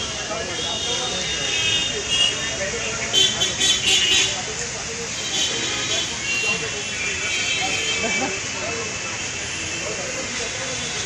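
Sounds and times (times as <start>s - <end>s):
crowd voices: 0.0s - 11.0s
traffic noise: 0.0s - 11.0s.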